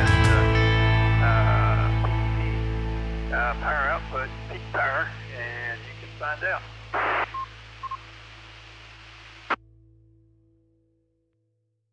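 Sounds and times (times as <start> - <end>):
song with low held notes: 0.0 - 10.3
person speaking: 3.3 - 7.7.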